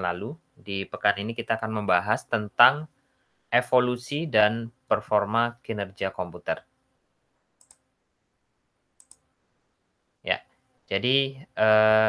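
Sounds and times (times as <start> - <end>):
faint short clicks: 7.6 - 7.8, 9.0 - 9.3.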